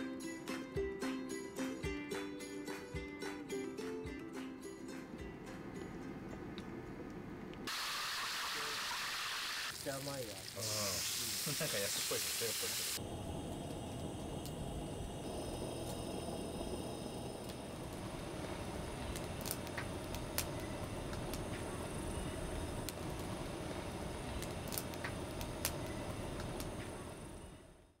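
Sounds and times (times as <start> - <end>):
hiss of burning: 7.7 - 27.9
wood fire crackling and popping: 9.7 - 11.8, 12.9 - 27.7.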